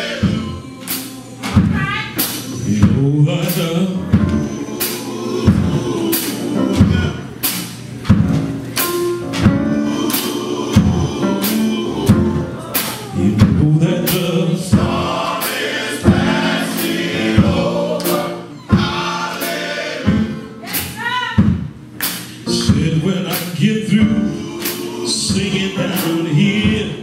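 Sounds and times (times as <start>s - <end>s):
men's choir singing in harmony: 0.0s - 1.5s, 2.2s - 7.4s, 9.0s - 20.6s, 22.5s - 27.0s
steady beat: 0.0s - 27.0s.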